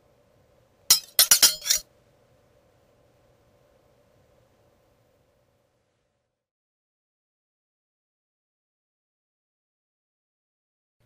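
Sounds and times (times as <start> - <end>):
sharp glassy clinks: 0.9 - 1.8.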